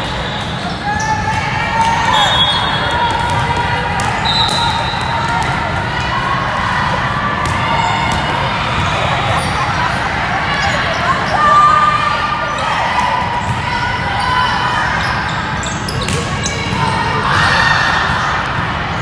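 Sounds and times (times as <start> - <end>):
murmur of voices: 0.0 - 19.0
referee's whistle blast: 2.0 - 3.0, 4.2 - 5.1.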